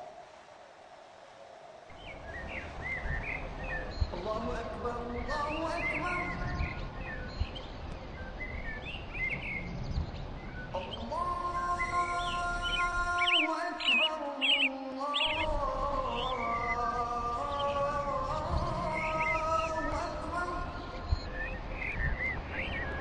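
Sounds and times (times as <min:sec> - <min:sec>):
birds chirping: 0:00.0 - 0:23.0.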